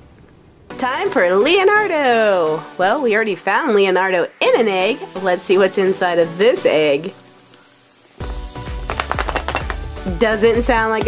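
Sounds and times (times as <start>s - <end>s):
background music: 0.4s - 11.0s
toy rattling in plastic egg: 8.9s - 9.9s.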